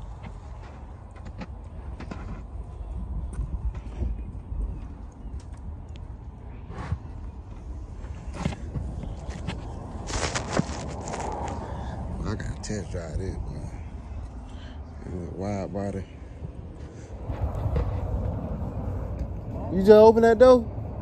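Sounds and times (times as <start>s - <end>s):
wind noise on microphone: 0.0s - 15.6s, 16.2s - 21.0s
footsteps on pavement: 6.8s - 11.6s.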